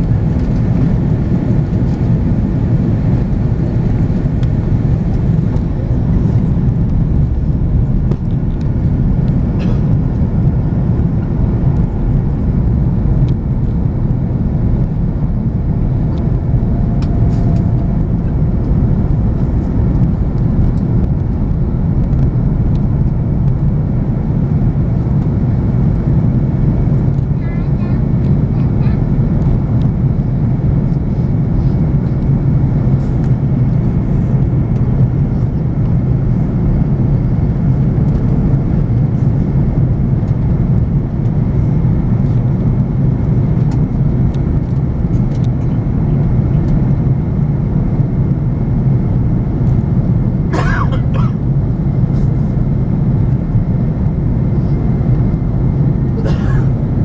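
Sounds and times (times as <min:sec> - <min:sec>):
airliner engines and airflow rumble: 0:00.0 - 0:57.0.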